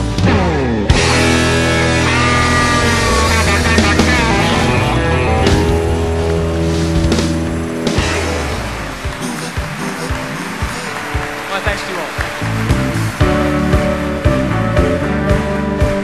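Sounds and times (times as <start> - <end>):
bass: 0.0 - 16.0
drums: 0.0 - 16.0
electric guitar lines: 0.0 - 16.0.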